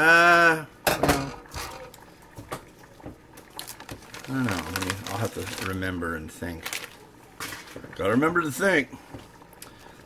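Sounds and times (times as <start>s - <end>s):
plastic bag crinkling: 3.5s - 8.0s.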